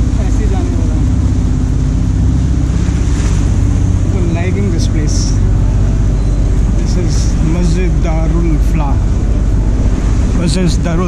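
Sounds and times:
churning water: 0.0s - 11.0s
low rumble: 0.0s - 11.0s.

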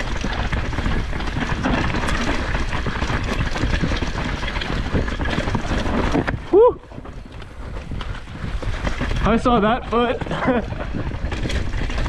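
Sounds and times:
bike rattling over roots: 0.0s - 12.0s
bike tyre noise on dirt: 0.0s - 12.0s.

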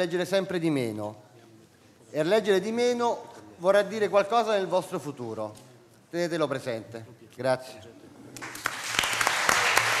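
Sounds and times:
audience applause: 8.4s - 10.0s.

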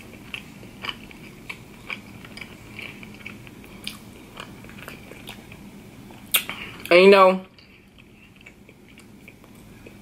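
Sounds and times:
wet chewing sounds: 0.0s - 6.9s.

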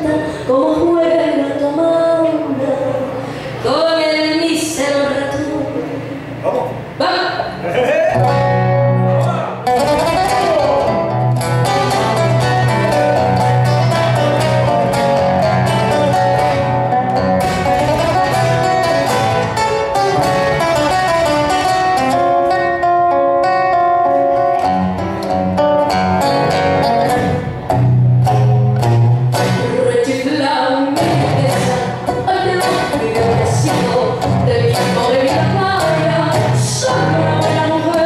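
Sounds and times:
fingerstyle nylon-string guitar: 8.1s - 38.0s
person singing: 29.4s - 38.0s.

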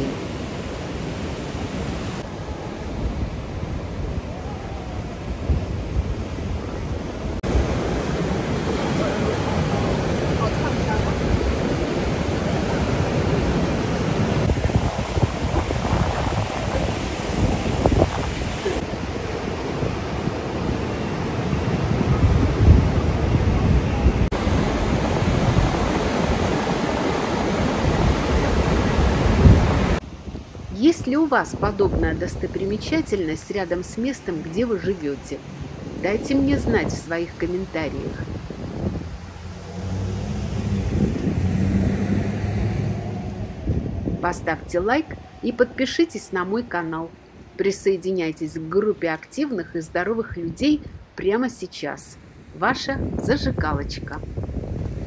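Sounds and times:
surf washing over rocks: 0.0s - 48.6s
wind rumbling on microphone: 0.0s - 55.0s.

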